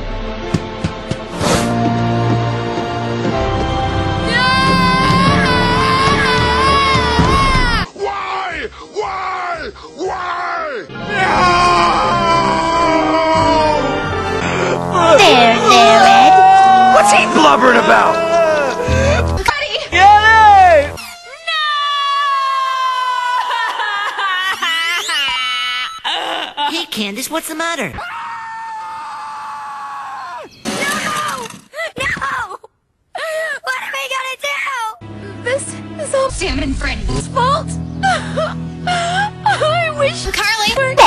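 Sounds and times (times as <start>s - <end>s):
gravelly man's voice yelling: 15.6s - 18.8s.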